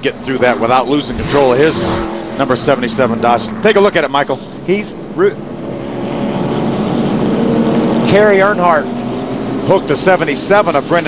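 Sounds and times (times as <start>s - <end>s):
race truck engines droning: 0.0s - 11.0s.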